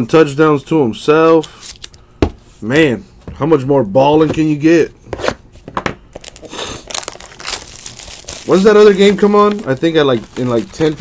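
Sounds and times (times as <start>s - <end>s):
cardboard rustling and crinkling: 6.2s - 11.0s.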